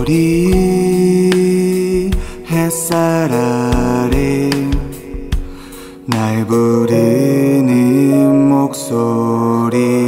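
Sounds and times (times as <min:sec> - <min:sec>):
soft accompaniment: 0:00.0 - 0:10.0
person singing long note: 0:06.1 - 0:10.0.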